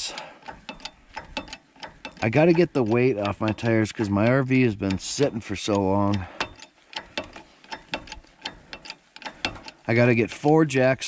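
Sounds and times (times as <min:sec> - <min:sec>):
hydraulic jack pump clicking: 0:00.0 - 0:10.6.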